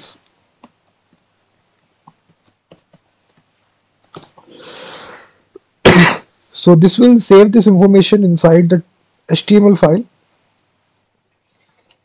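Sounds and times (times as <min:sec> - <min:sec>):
keyboard typing: 0:00.6 - 0:04.5.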